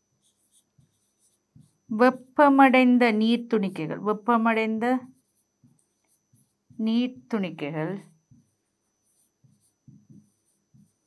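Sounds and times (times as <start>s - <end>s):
pen scratching on whiteboard screen: 0.0s - 3.2s, 4.2s - 11.0s
woman speaking: 1.9s - 5.1s, 6.8s - 8.1s.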